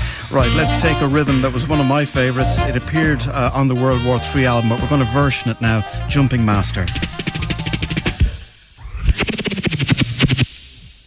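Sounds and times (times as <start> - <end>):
rapid percussive hits: 6.5 - 10.6.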